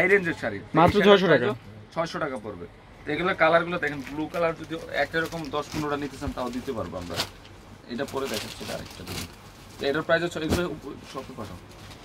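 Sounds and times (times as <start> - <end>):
man talking: 0.0 - 11.6.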